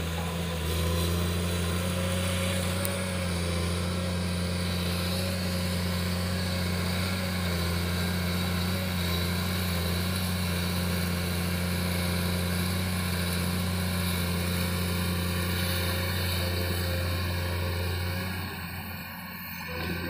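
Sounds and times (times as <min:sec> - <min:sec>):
excavator diesel engine running: 0:00.0 - 0:20.0.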